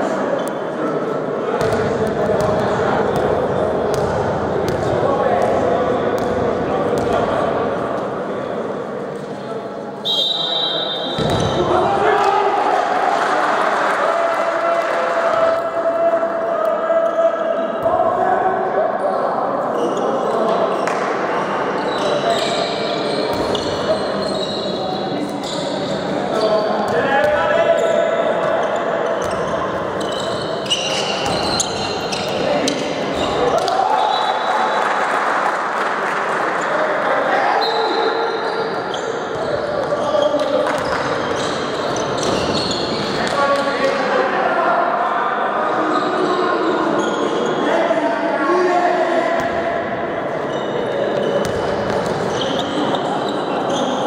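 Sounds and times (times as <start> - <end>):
ball bouncing on court: 1.6 - 2.6, 3.2 - 5.6, 6.2 - 6.4, 11.2 - 11.6, 51.4 - 52.2.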